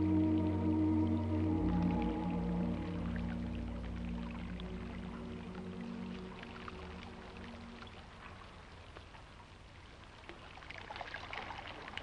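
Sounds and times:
ambient drone music: 0.0s - 8.6s
trickling water: 0.0s - 12.0s
water drips: 0.0s - 12.0s.

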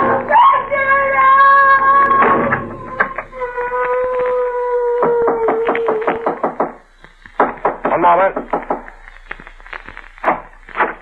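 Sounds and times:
knocks on a door: 5.3s - 6.8s.

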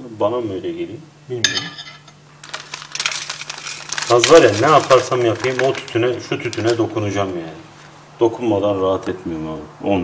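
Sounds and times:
plastic pouch crinkling: 2.3s - 8.0s.

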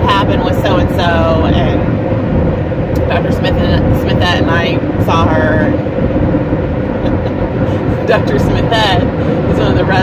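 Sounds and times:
car cabin road and engine noise: 0.0s - 10.0s.

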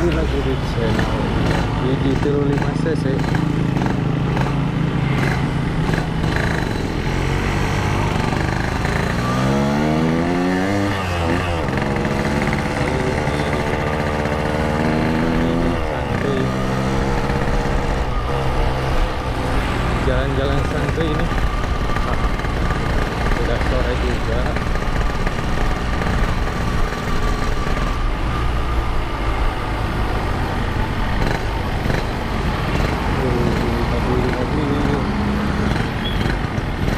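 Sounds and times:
motorcycle engine accelerating: 0.0s - 36.9s.

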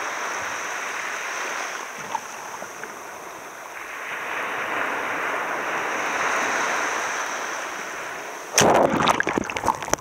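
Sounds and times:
surf breaking on beach: 0.0s - 2.8s, 3.7s - 10.0s.

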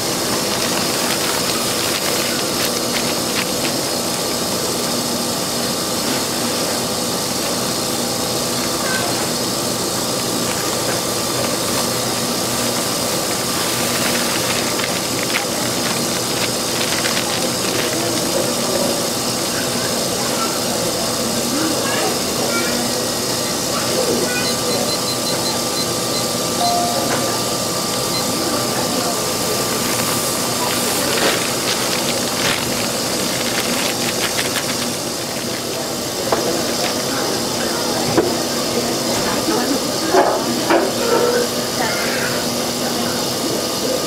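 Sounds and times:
scraper churning thick mixture: 0.0s - 4.9s, 10.0s - 20.1s, 29.3s - 37.6s
electric mixer running: 0.0s - 38.8s.

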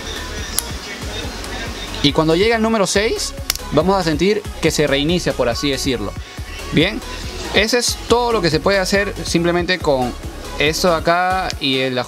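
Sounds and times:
background music: 0.0s - 12.0s
sharp plastic click: 3.5s - 3.7s.

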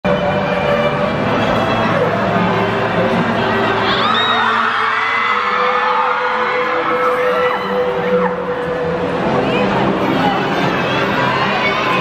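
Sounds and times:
music playing: 0.0s - 12.0s
crowd cheering and screaming: 1.5s - 12.0s.

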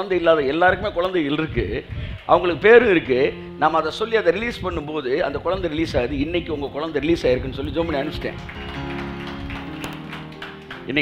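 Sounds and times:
man speaking: 0.0s - 8.4s
soft background music: 0.0s - 11.0s.

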